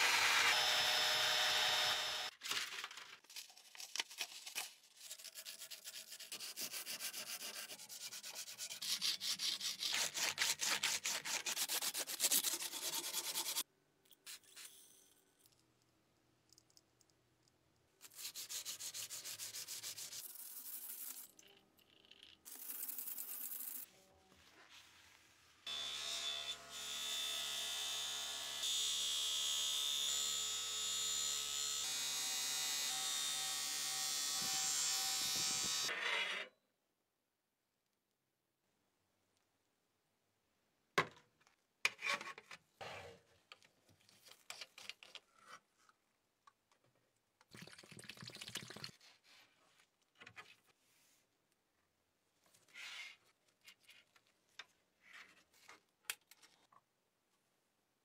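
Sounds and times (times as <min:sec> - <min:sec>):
sandpaper scraping metal blade: 0:04.5 - 0:13.6, 0:18.0 - 0:21.3.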